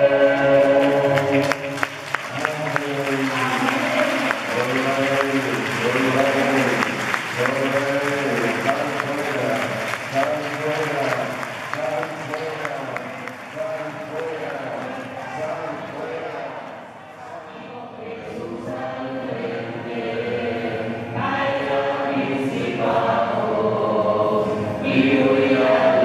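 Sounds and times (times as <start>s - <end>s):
congregation singing: 0.0s - 26.0s
crowd applauding: 0.3s - 16.9s.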